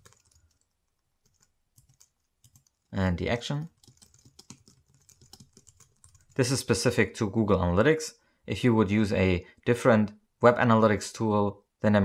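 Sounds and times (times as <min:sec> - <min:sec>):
computer keyboard typing: 0:00.0 - 0:03.0, 0:03.6 - 0:06.6.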